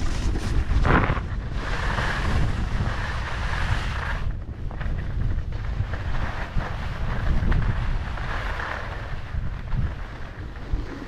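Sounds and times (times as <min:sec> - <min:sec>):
skis sliding over packed snow: 0:00.0 - 0:11.0
wind buffeting microphone: 0:00.0 - 0:11.0.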